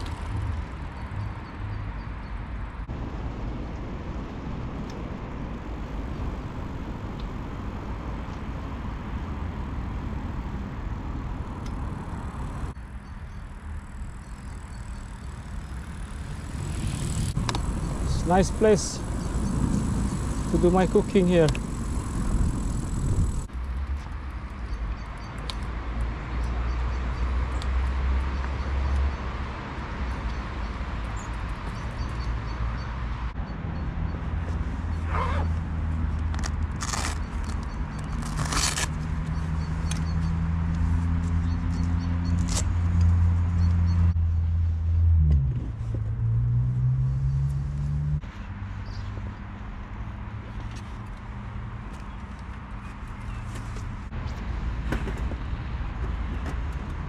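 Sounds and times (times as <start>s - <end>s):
road traffic engine hum: 0.0s - 57.0s.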